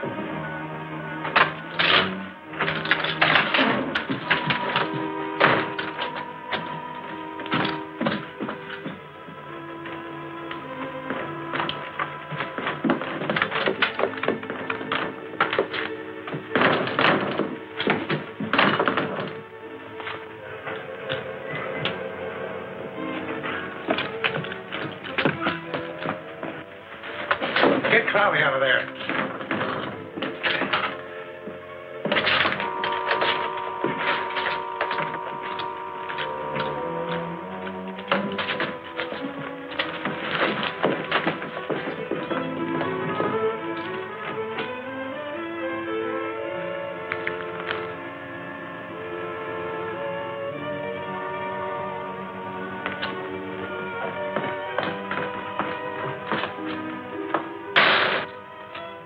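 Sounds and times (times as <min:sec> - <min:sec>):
dramatic orchestral score: 0:00.0 - 0:59.0
wooden chairs crashing: 0:01.2 - 0:22.0, 0:23.2 - 0:45.2, 0:52.7 - 0:59.0.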